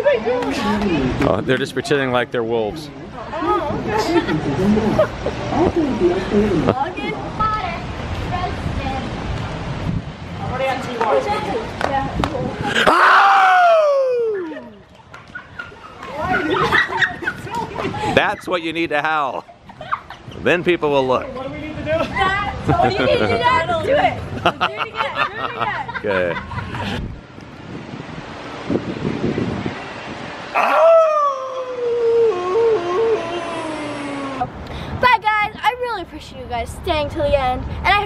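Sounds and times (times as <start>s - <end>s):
person imitating wolf howl: 12.8s - 14.6s, 30.6s - 34.5s.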